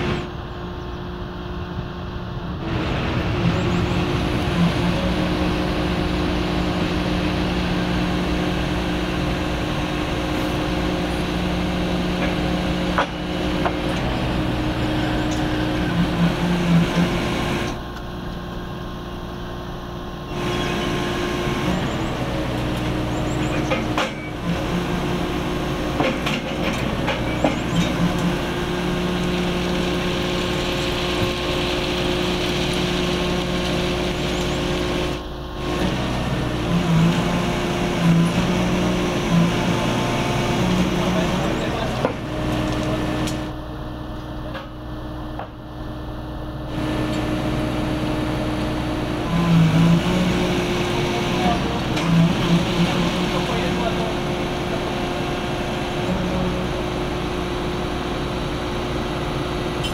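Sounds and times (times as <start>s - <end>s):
machine engine running: 0.0s - 59.9s.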